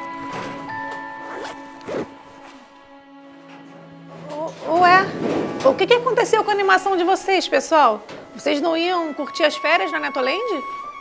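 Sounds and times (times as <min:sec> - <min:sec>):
soft background music: 0:00.0 - 0:11.0
backpack zipper pulled open: 0:01.2 - 0:02.6.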